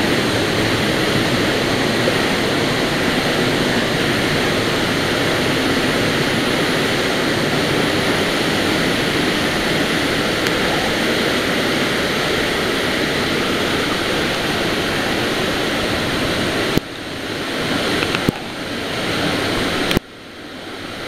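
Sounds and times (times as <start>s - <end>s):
waterfall rushing: 0.0s - 21.0s.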